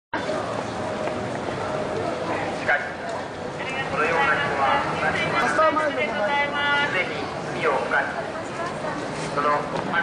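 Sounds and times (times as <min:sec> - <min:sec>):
crowd voices: 0:00.2 - 0:10.0
traffic hum: 0:00.2 - 0:10.0.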